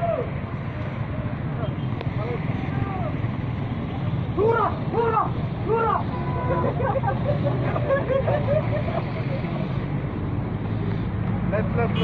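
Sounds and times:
vehicle engines rumbling: 0.0 - 12.0
people calling out: 4.4 - 7.7.

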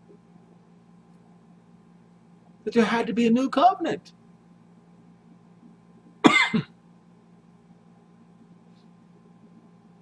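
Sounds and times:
man coughing: 6.2 - 6.8.

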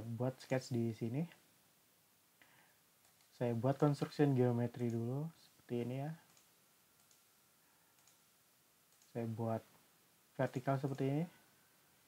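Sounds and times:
computer mouse clicks: 3.0 - 3.3, 6.2 - 7.3, 8.0 - 8.3, 8.9 - 9.2.

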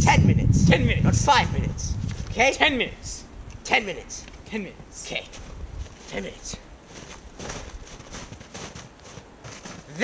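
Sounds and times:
footsteps crunching in snow: 5.1 - 10.0.

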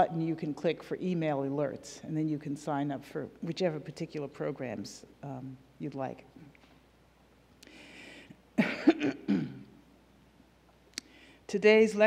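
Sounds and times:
faint breath hiss: 5.0 - 11.8
woman coughing into microphone: 8.6 - 9.8.

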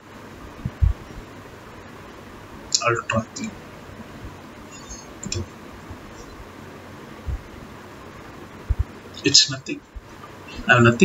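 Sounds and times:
steady hiss: 0.0 - 11.0
microphone handling bumps: 0.5 - 1.3, 7.2 - 7.7, 8.6 - 9.0.

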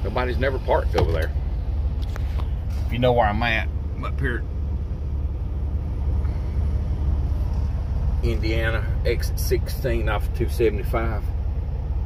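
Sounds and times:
diesel engine idling: 0.0 - 12.0.

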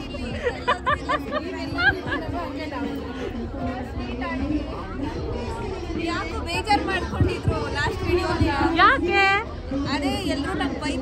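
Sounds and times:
crowd murmur: 0.0 - 11.0
people chattering: 0.0 - 11.0.

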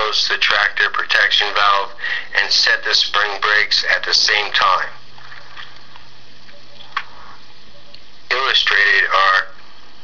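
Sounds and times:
background hiss: 0.0 - 10.0
faint low hum: 0.0 - 10.0.

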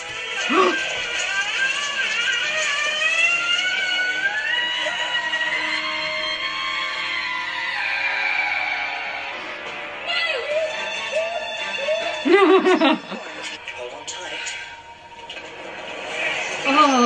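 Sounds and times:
music with gliding high tones: 0.0 - 17.0.

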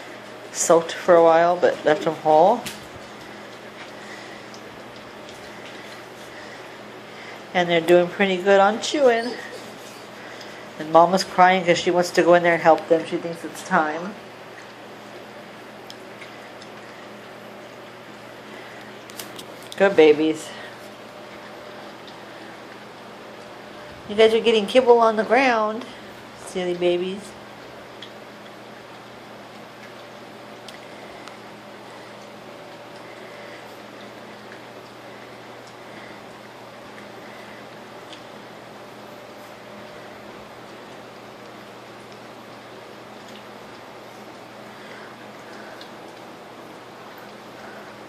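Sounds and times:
low steady hum: 0.0 - 48.0
puppies chewing wet food: 0.0 - 48.0.

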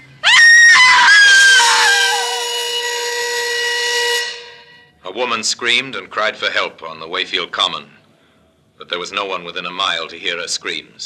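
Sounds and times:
woman screaming: 0.2 - 2.7.

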